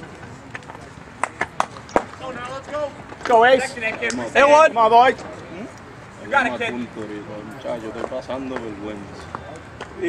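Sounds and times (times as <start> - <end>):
sharp claps: 1.2 - 2.2.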